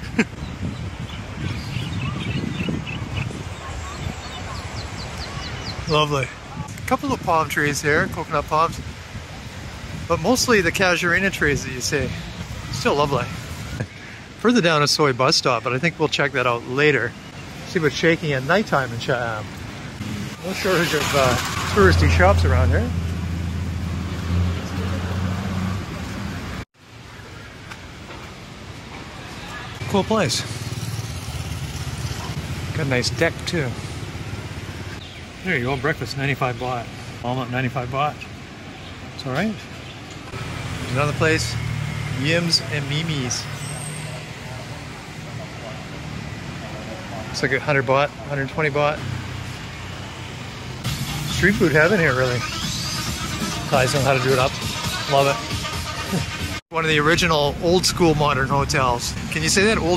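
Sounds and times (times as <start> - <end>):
street noise: 0.0 - 59.9
wind: 0.0 - 59.9
faint voices of people and children: 3.4 - 6.7.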